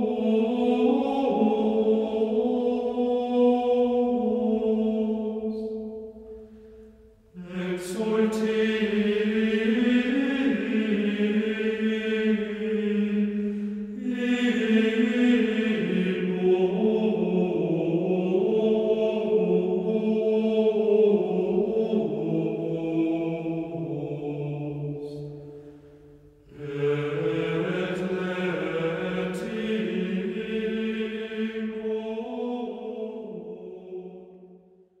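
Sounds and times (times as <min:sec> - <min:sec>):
unaccompanied sung chant: 0:00.0 - 0:06.0, 0:07.4 - 0:25.3, 0:26.5 - 0:34.5.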